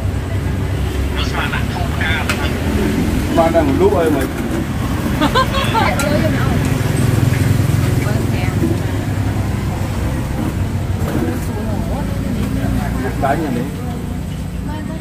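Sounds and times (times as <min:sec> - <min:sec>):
low rumble of road traffic: 0:00.0 - 0:15.0
voices talking: 0:00.0 - 0:15.0.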